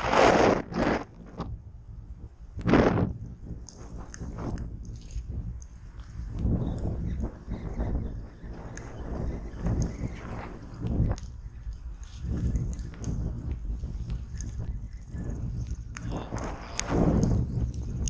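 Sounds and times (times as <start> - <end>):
wind buffeting microphone: 0.0 - 18.0
faint ticks: 3.2 - 18.0.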